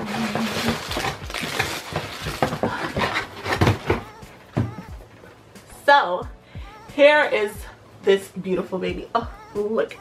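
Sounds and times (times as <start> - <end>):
cardboard and packaging rustling: 0.0 - 5.5.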